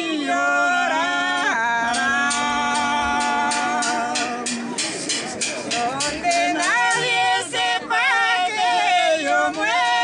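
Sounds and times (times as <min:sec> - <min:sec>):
voices singing slow song: 0:00.0 - 0:04.8, 0:05.7 - 0:10.0.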